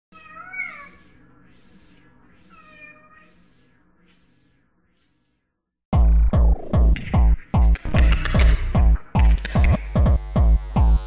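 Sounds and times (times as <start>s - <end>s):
cat meowing: 0.1s - 1.1s, 2.5s - 3.3s.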